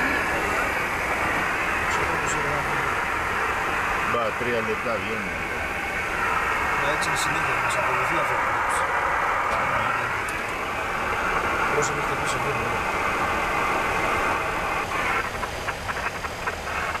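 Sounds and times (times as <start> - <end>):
radio static crackles: 0.0 - 17.0
radio static hiss: 0.0 - 17.0.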